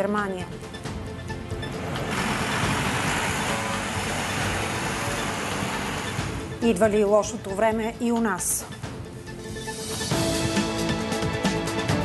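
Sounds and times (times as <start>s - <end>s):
background music: 0.0s - 12.0s
steady rushing noise: 0.8s - 6.6s.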